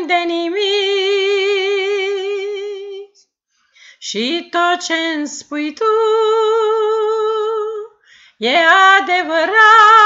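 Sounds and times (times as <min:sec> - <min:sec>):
woman singing a hymn: 0:00.0 - 0:03.2, 0:04.0 - 0:10.0.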